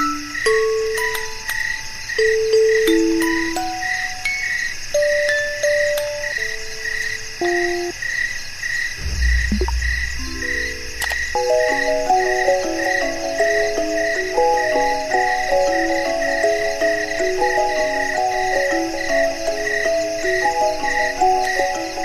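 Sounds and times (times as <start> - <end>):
music box melody: 0.0 - 7.9, 11.0 - 22.0
crickets chirping: 0.0 - 22.0
low rumble: 9.0 - 12.0.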